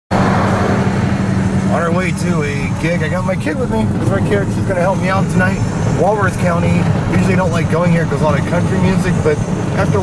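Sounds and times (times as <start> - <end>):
road and engine noise in cabin: 0.1 - 10.0.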